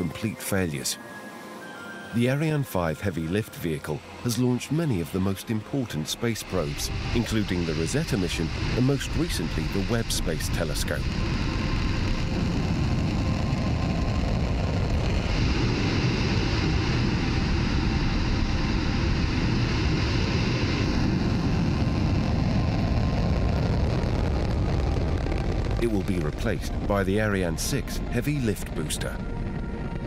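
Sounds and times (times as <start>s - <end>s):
rocket engines roaring: 2.2s - 30.0s.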